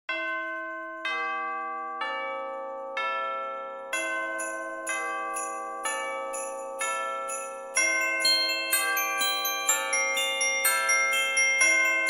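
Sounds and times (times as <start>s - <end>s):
bell-like chime notes: 0.1s - 12.0s.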